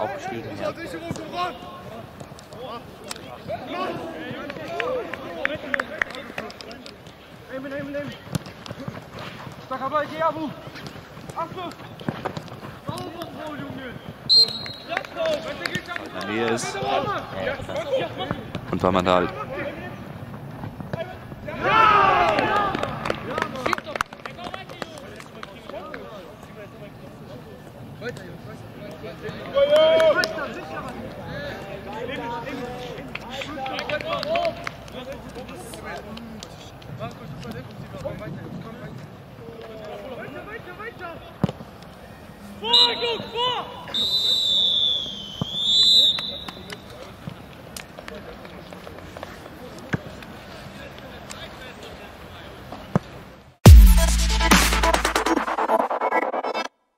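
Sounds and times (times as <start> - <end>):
footballers shouting: 0.0 - 6.4, 20.9 - 23.6
referee's whistle blast: 14.3 - 14.9, 42.6 - 46.7
players shouting: 21.1 - 23.4.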